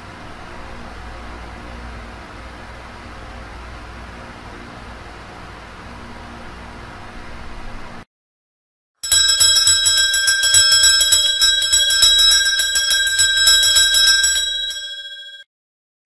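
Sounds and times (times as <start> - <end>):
altar bell ringing rapidly: 9.0 - 15.4.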